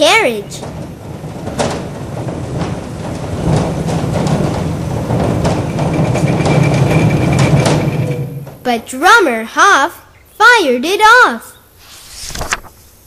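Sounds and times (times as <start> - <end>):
cannon carriage rolling: 0.0 - 9.0.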